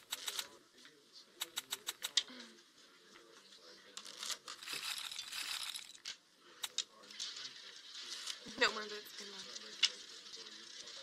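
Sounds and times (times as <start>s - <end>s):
casino chip clicks: 0.0s - 0.5s, 1.4s - 2.2s.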